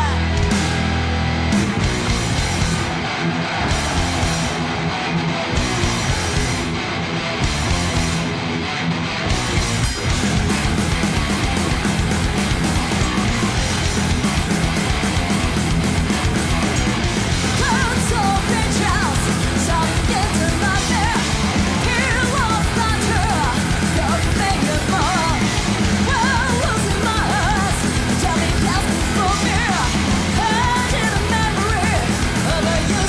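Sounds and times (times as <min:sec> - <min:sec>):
distorted electric guitars: 0:00.0 - 0:33.0
fast dense drumming: 0:01.5 - 0:06.8, 0:09.3 - 0:33.0.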